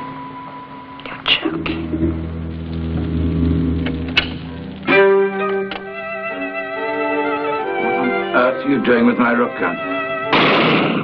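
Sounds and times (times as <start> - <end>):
low steady drone: 0.0 - 10.4.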